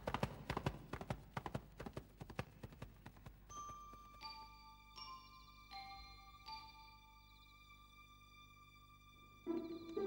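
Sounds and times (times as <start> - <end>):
galloping hoofbeats: 0.0 - 4.4
soft chiming music: 3.5 - 10.0.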